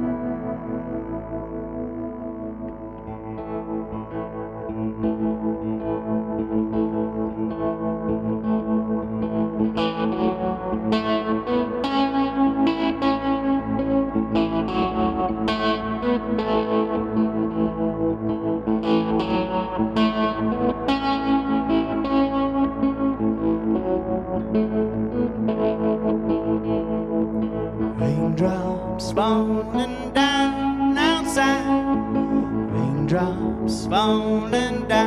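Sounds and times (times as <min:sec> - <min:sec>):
electric guitar playing: 0:00.0 - 0:35.0.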